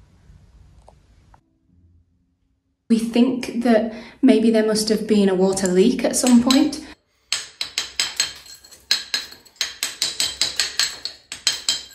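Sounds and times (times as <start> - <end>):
hammer striking steel chisel: 5.5 - 11.9.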